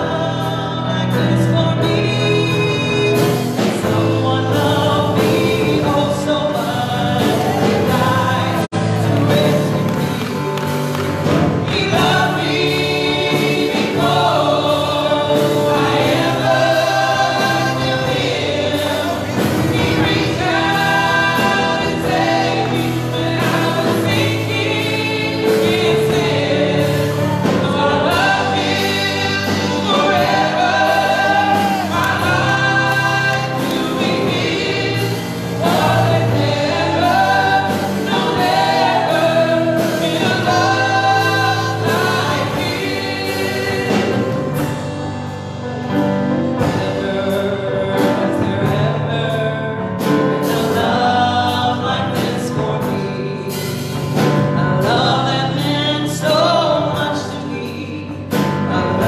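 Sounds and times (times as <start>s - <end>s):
women singing together: 0.0s - 10.2s, 11.5s - 44.8s, 50.4s - 54.0s
held accompaniment chords: 0.0s - 59.0s.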